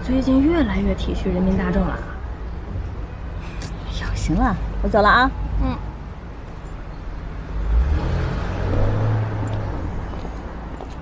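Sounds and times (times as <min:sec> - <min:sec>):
car engine pulling away: 0:07.5 - 0:10.4.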